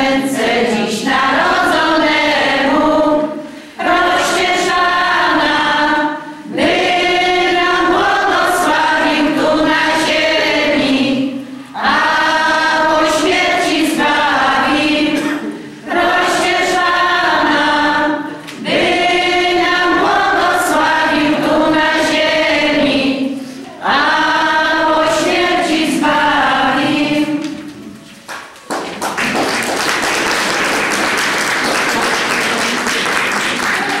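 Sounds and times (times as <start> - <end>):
women's choir singing: 0.0 - 27.9
applause: 28.2 - 34.0.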